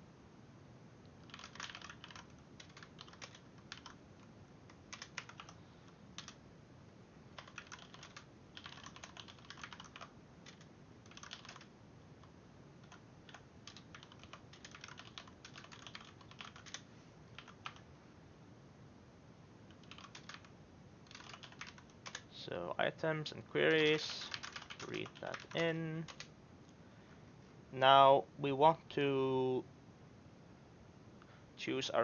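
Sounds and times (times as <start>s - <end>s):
computer keyboard typing: 1.2s - 6.4s, 7.3s - 17.9s, 19.7s - 22.3s, 23.8s - 26.3s.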